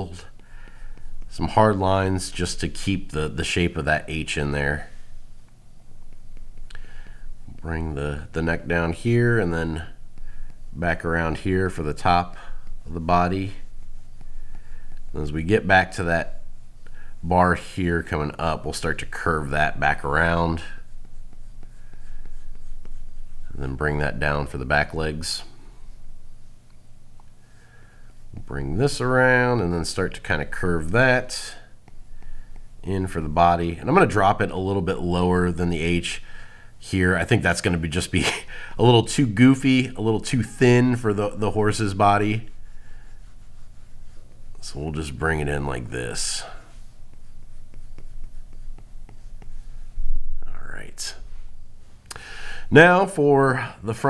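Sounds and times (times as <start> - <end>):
stylus scratching on glass screen: 0.0 - 36.2, 36.9 - 52.0
faint steady hum: 0.0 - 54.0
breath at microphone: 0.4 - 1.1, 6.8 - 7.3, 52.1 - 52.7.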